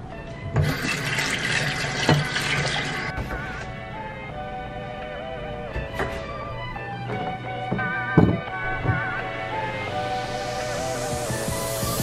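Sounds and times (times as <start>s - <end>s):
background music: 0.0s - 12.0s
water running from tap: 0.6s - 3.1s.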